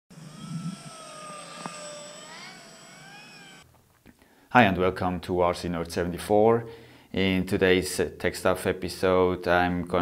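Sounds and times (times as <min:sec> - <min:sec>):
model plane motor whine: 0:00.1 - 0:03.7.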